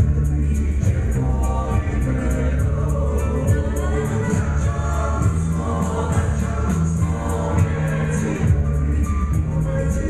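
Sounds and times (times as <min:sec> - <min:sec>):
vocal ensemble singing in harmony: 0:00.0 - 0:10.0.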